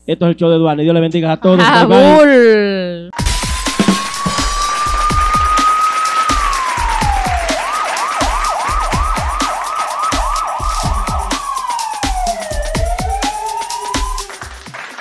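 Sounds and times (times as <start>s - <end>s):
thumping drum beat: 3.2s - 14.8s
police siren sound effect: 3.8s - 14.5s.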